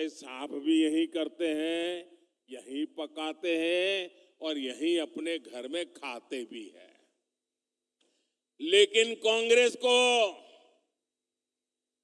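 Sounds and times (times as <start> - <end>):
man speaking: 0.0 - 7.1, 8.5 - 10.7.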